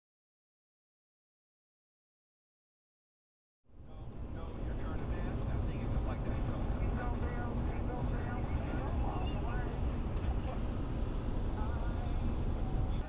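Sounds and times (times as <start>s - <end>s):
car road and engine rumble: 3.7s - 13.0s
indistinct talking: 3.8s - 13.0s.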